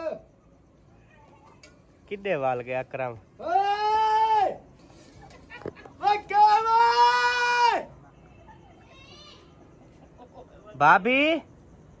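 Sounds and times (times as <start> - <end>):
man shouting a name: 3.4 - 4.6, 6.0 - 7.8.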